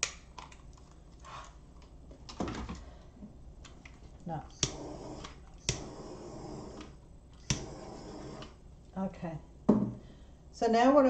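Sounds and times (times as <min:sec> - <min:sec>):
torch gas hiss: 0:04.6 - 0:08.5.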